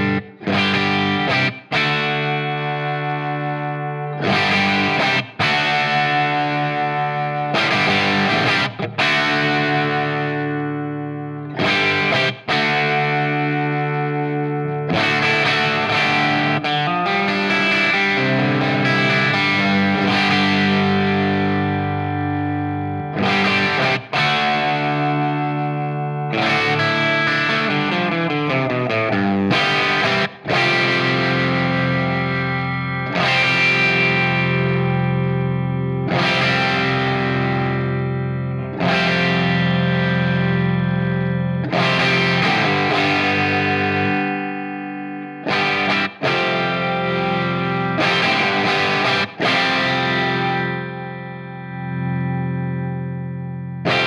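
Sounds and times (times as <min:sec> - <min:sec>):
overdriven electric guitar chords: 0:00.0 - 0:54.0.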